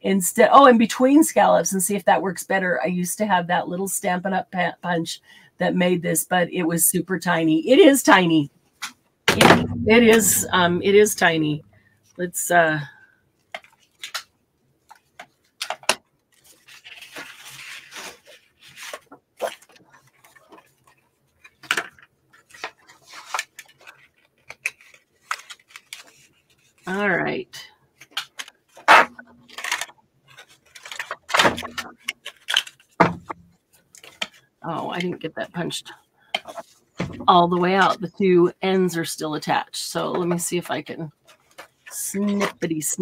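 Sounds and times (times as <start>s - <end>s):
paper rustling: 13.4s - 26.9s, 28.0s - 34.5s.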